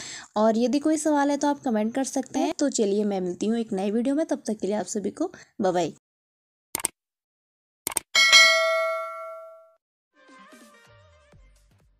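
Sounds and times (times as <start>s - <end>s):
bright bell ding: 8.2s - 9.8s.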